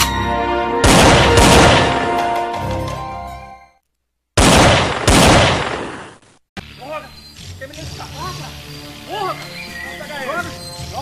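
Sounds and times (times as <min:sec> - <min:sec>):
loud explosion blast: 0:00.8 - 0:02.2, 0:04.4 - 0:06.0
short arching calls: 0:06.6 - 0:11.0.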